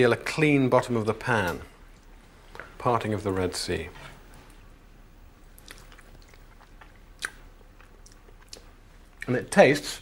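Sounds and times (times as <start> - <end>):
chewing and mouth sounds: 5.5 - 9.3
small mouth clicks: 5.6 - 9.3.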